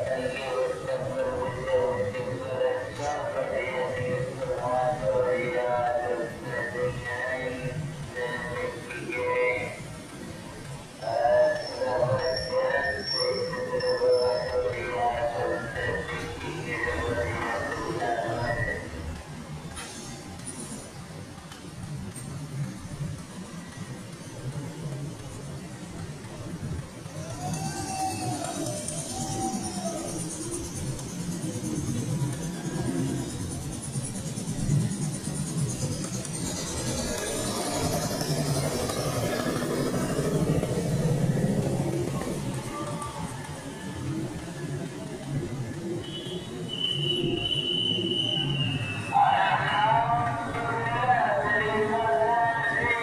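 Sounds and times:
faint voices: 0.0s - 53.0s
motorcycles passing: 0.0s - 53.0s
street traffic rumble: 0.0s - 53.0s.

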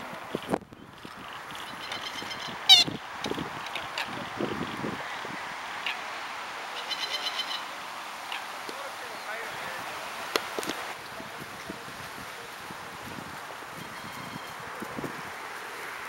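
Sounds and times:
harsh bird call: 1.6s - 3.0s, 6.7s - 7.8s.

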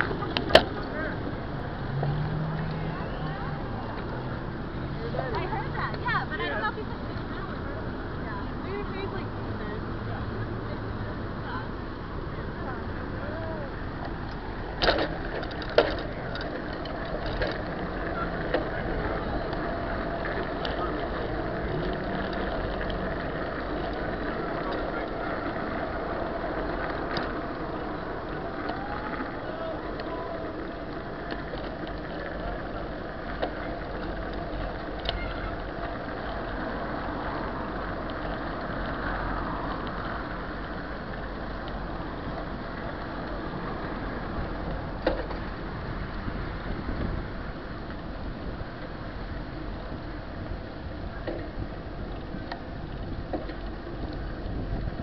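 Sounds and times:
bicycle road rumble: 0.0s - 55.0s
faint voices: 0.0s - 55.0s
wind: 0.0s - 55.0s
wind rush on microphone: 34.5s - 55.0s.

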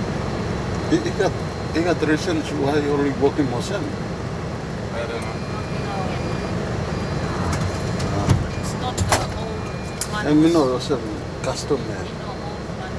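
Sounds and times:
car cabin engine rumble: 0.0s - 12.9s.

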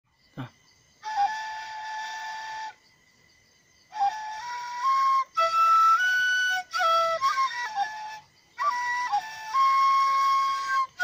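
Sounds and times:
bamboo flute melody: 1.0s - 2.9s, 3.9s - 11.0s.

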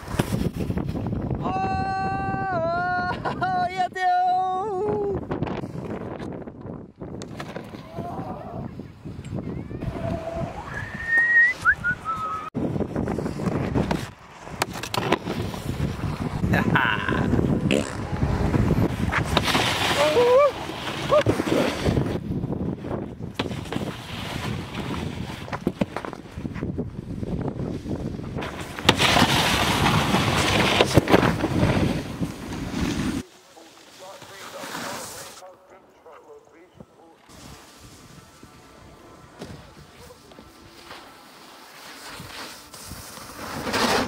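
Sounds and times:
wind on microphone: 0.0s - 3.4s, 4.7s - 28.8s
snowboard scraping across snow: 12.6s - 16.5s, 17.6s - 22.2s, 23.4s - 35.5s, 37.3s - 44.0s.

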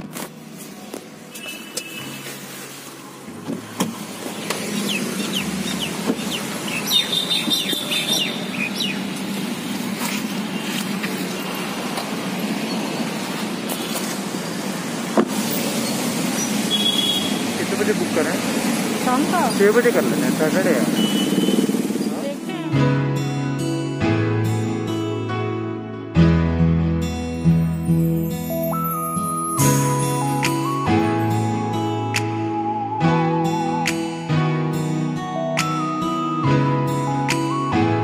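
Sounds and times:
street traffic noise: 0.0s - 26.2s, 27.0s - 38.0s.

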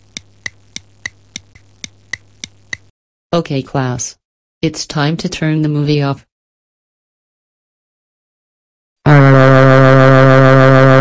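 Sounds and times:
clock ticking: 0.0s - 2.9s.

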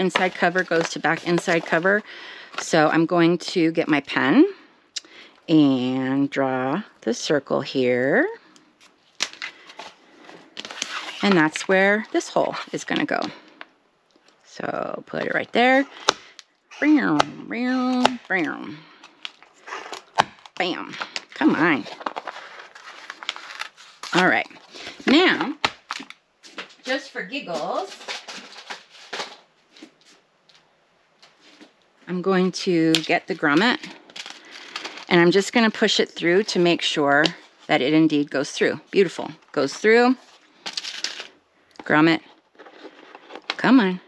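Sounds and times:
craft supplies rustling and clattering: 0.0s - 2.8s, 17.8s - 30.2s, 42.2s - 43.7s
cardboard scraping and rustling: 21.7s - 24.6s.

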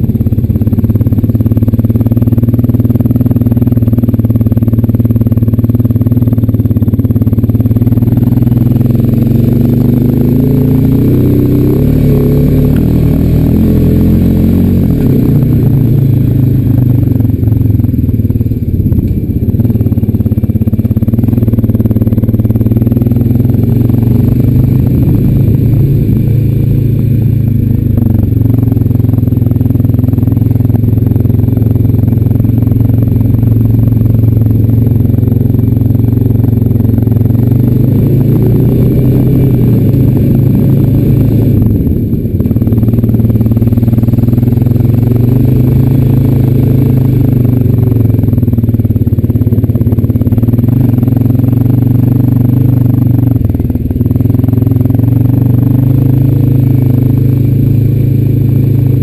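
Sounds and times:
atv engine running under load: 0.0s - 59.0s.

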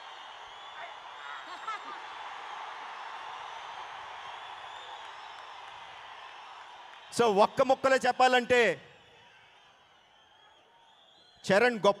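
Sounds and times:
crowd cheering and clapping: 0.0s - 11.6s.

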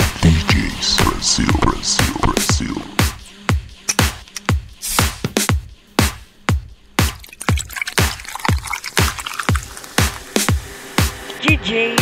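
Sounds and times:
kick drum beat: 1.0s - 8.8s.

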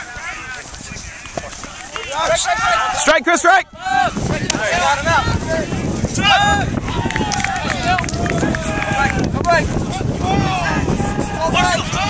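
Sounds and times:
players shouting in open field: 0.0s - 12.0s.

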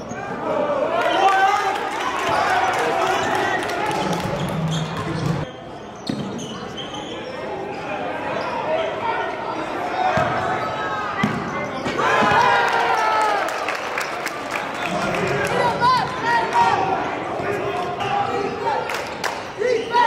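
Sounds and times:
shoe squeaks: 4.1s - 8.7s.

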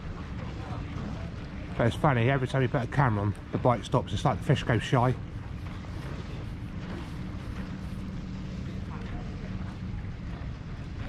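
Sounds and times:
boat engine running: 0.0s - 11.0s
outdoor harbour ambience: 0.0s - 11.0s.

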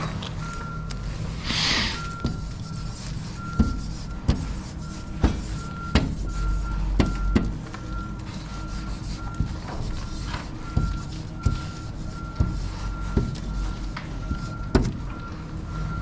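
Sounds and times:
low engine rumble: 0.0s - 16.0s
reversing alarm beeping: 0.4s - 16.0s.

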